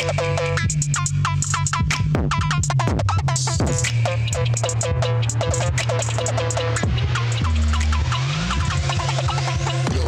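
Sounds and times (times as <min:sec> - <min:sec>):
heavy sustained synth bass: 0:00.0 - 0:10.0
rising synth sweep: 0:04.0 - 0:10.0
downward-gliding synth notes: 0:04.3 - 0:10.0.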